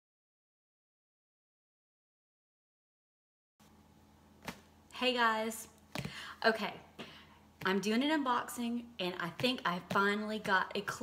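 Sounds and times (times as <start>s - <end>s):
low steady hum: 3.6s - 11.0s.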